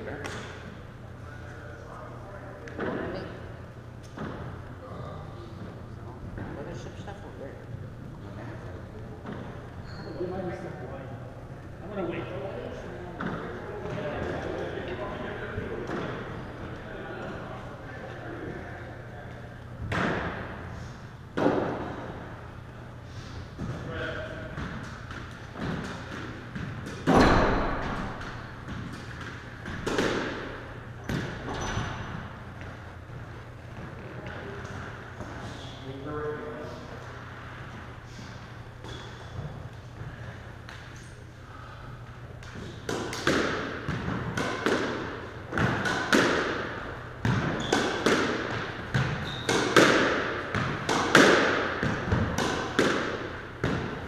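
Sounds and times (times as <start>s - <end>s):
squash ball hitting racket and walls: 13.2s - 16.7s, 19.8s - 22.8s, 23.4s - 35.7s, 37.2s - 41.3s, 42.0s - 54.0s.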